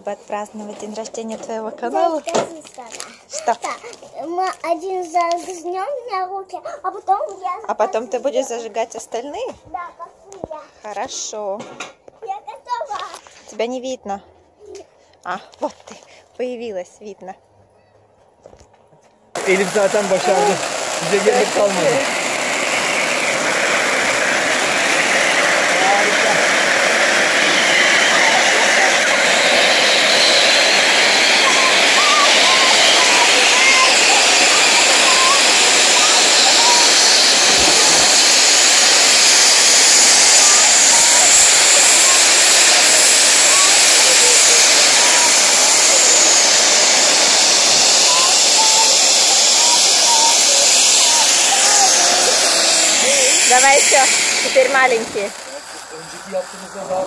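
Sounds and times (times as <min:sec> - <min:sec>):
firework fountains hissing: 0:19.4 - 0:57.0.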